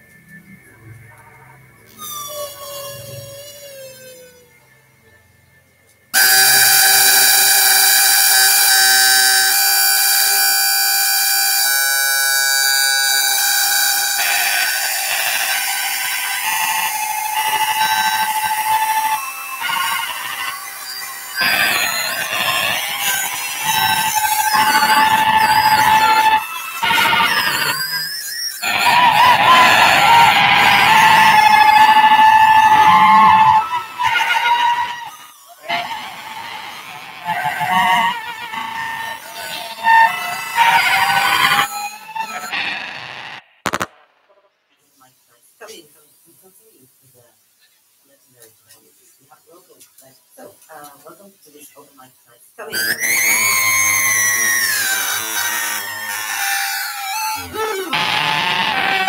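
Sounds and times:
sustained synthesized tones: 6.2 - 43.2.

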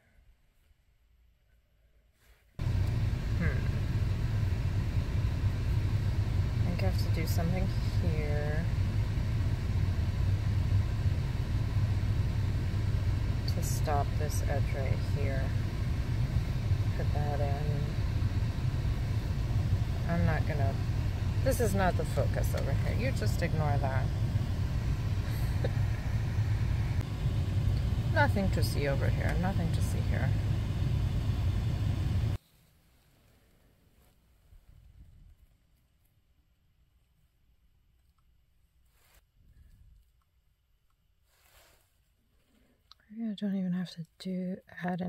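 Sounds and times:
car engine idling: 2.6 - 32.4.

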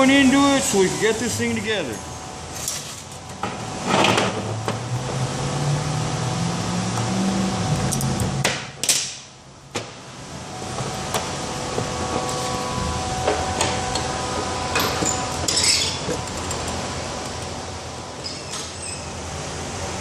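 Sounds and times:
workshop machinery hum: 0.0 - 20.0.

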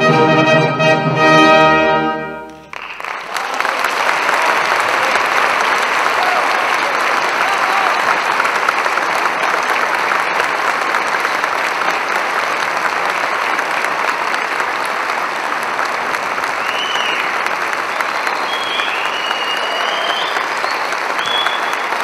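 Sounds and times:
audience applauding: 2.5 - 22.0.

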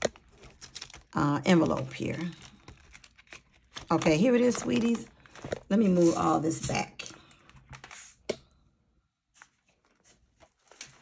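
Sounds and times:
paper rustling: 0.0 - 6.3, 9.3 - 11.0.

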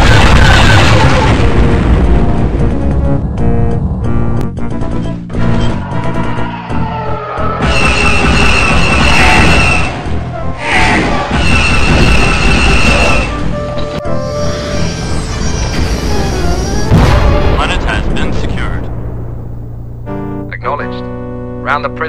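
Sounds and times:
dramatic background music: 0.0 - 22.0.

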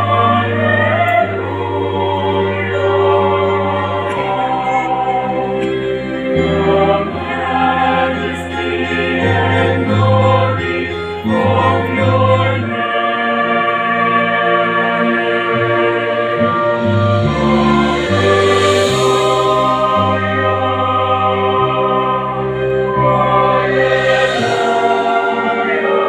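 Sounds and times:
choir singing a hymn: 0.0 - 26.0.

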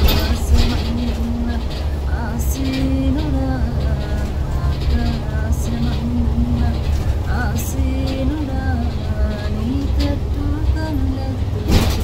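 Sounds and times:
bus rumbling from inside: 0.0 - 12.0
woman singing unaccompanied: 0.0 - 12.0.

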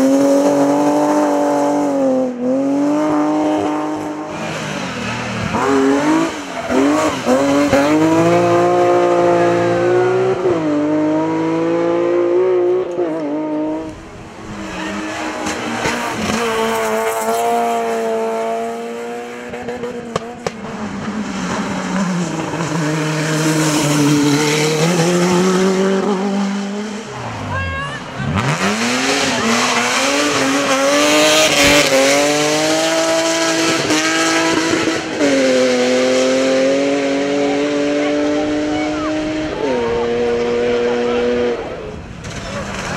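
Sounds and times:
race car engines accelerating: 0.0 - 42.9.

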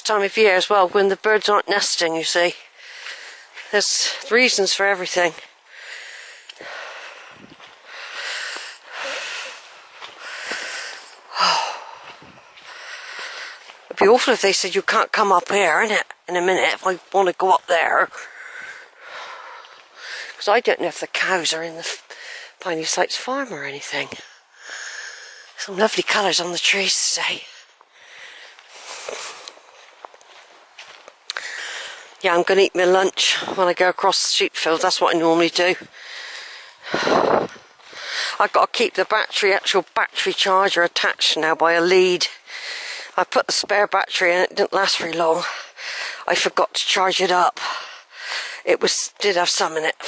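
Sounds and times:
footsteps on muddy leafy path: 0.0 - 50.0
person breathing hard: 2.8 - 3.6, 5.7 - 13.8, 18.2 - 20.4, 24.2 - 25.6, 27.9 - 29.5, 31.4 - 32.2, 35.9 - 38.4, 42.4 - 43.2, 45.6 - 46.3, 47.6 - 48.7
footsteps on wet leaves: 5.0 - 14.6, 16.8 - 20.4, 27.5 - 32.2, 35.8 - 40.5.

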